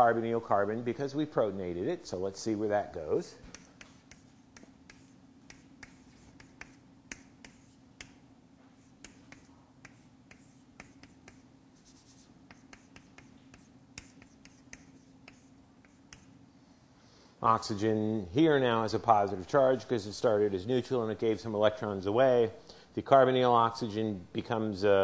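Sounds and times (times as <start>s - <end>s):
low room hum: 0.0s - 25.0s
chalk tapping and scratching: 3.4s - 16.4s.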